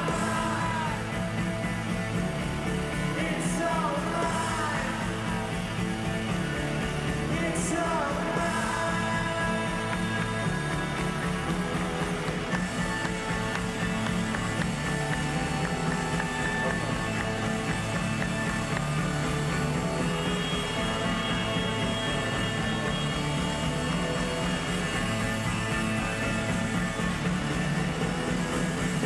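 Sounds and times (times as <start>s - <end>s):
live rock band playing: 0.0s - 29.0s.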